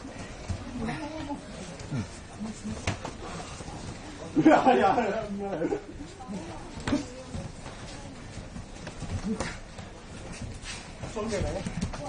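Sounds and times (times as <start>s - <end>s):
scuffling on mats: 6.0s - 12.0s.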